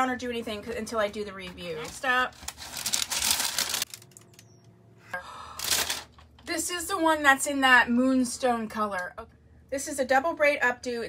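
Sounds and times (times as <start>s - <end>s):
wig rustling and crinkling: 1.3s - 4.4s, 5.6s - 6.4s.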